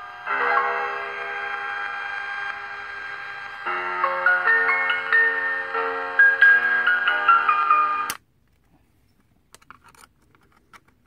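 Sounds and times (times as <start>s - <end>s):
electronic melody from small speaker: 0.0s - 8.2s.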